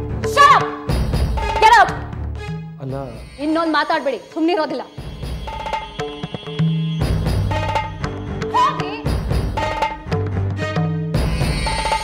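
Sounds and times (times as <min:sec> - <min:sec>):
background score music: 0:00.0 - 0:12.0
woman speaking forcefully: 0:00.3 - 0:00.8, 0:01.6 - 0:02.0.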